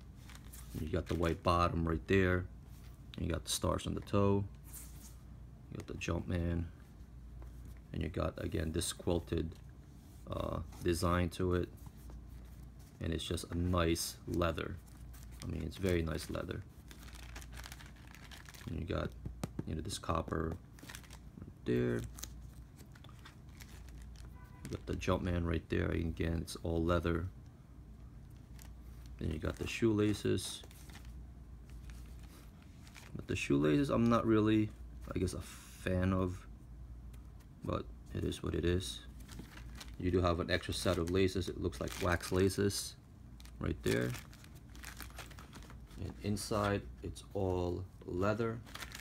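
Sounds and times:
low room hum: 0:00.0 - 0:49.0
plastic bag crinkling: 0:15.1 - 0:18.9, 0:20.7 - 0:21.3, 0:21.9 - 0:24.3, 0:39.1 - 0:42.6, 0:43.4 - 0:46.7, 0:48.6 - 0:49.0
sneaker handling clicks and rustles: 0:39.1 - 0:42.3.

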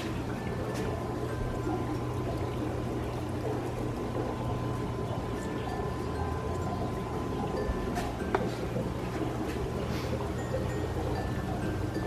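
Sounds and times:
air stones bubbling in water: 0:00.0 - 0:12.0
steady low hum: 0:00.0 - 0:12.0.

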